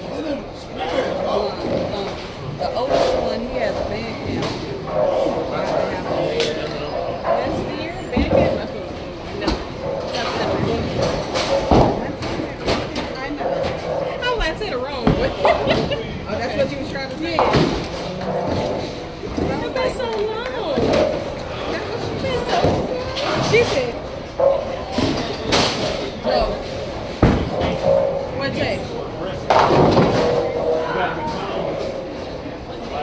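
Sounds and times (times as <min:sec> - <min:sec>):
chatter of many voices: 0:00.0 - 0:33.0
bowling balls thudding on lanes: 0:01.5 - 0:14.2, 0:17.4 - 0:19.9, 0:20.5 - 0:28.4, 0:29.4 - 0:33.0.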